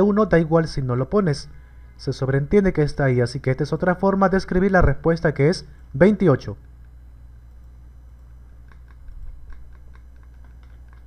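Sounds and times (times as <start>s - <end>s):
steady low hum: 0.0s - 11.0s
keyboard typing clicks: 7.6s - 11.0s.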